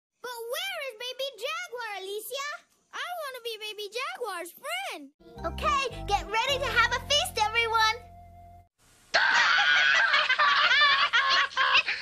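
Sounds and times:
cartoon music: 5.2s - 8.7s
character voices laughing: 9.2s - 12.0s.

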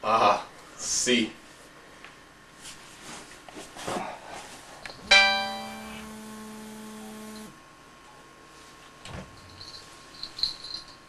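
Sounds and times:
faint hum: 3.6s - 11.0s
sustained chord: 5.0s - 7.5s.

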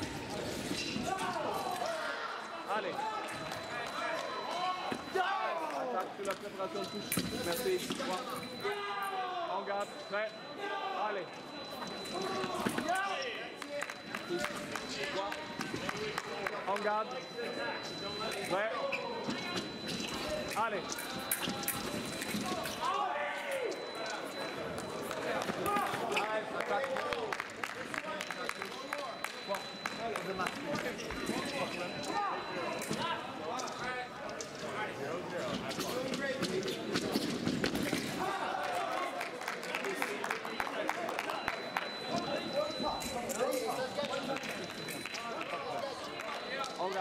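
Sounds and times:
voices in a large hall: 0.0s - 47.0s.

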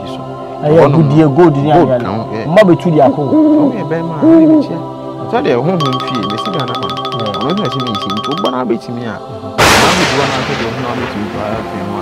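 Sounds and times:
man talking: 5.4s - 9.2s.

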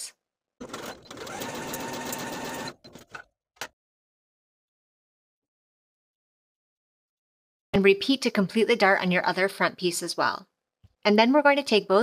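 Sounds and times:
sewing machine stitching: 0.6s - 3.3s.

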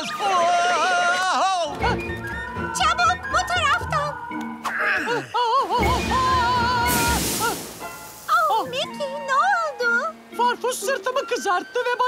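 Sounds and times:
light background music: 0.0s - 12.0s
hissing blast of breath: 6.8s - 8.3s.

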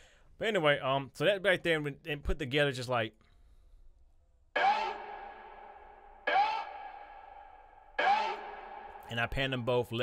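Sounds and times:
distorted vocal chant samples: 4.6s - 9.2s.

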